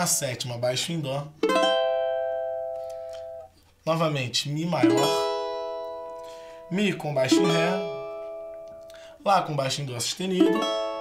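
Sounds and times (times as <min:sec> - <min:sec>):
small guitar chord strummed: 0:01.4 - 0:03.5, 0:04.8 - 0:09.1, 0:10.4 - 0:11.0.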